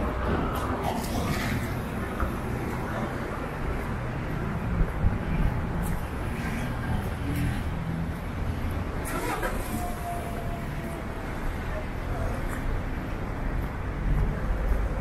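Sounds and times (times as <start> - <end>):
vehicles passing on wet road: 0.0 - 15.0.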